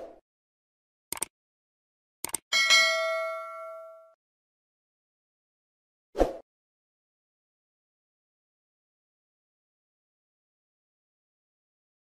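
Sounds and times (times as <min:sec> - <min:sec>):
mouse double clicks: 0:01.1 - 0:01.3
notification bell ding: 0:02.5 - 0:04.2.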